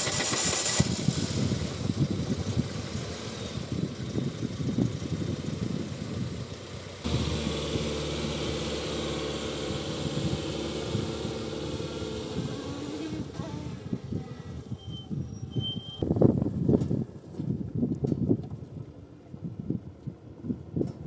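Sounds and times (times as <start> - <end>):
car engine idling: 0.0 - 14.7.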